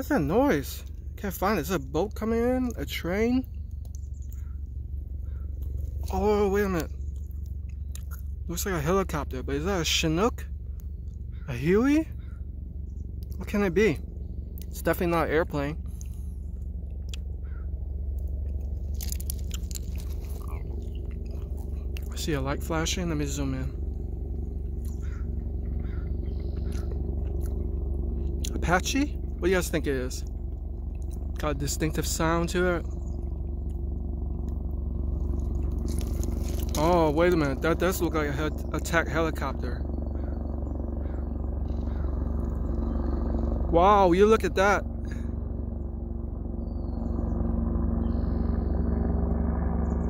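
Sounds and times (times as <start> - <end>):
distant helicopter rotor drone: 0.0 - 50.0.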